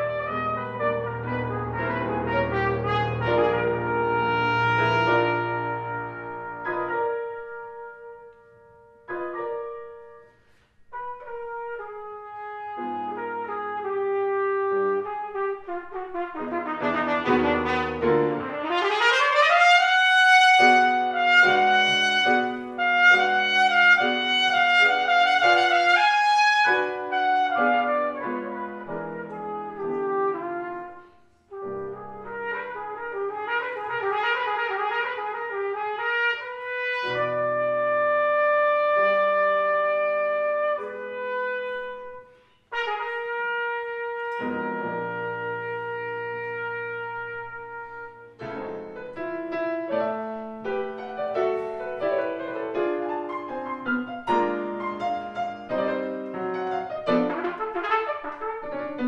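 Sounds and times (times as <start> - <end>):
piano accompaniment: 0.0 - 59.0
solo trumpet playing: 0.0 - 59.0.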